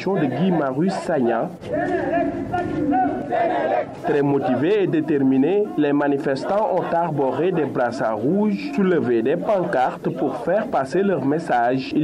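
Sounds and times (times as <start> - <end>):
crowd chanting and shouting: 0.0 - 12.0.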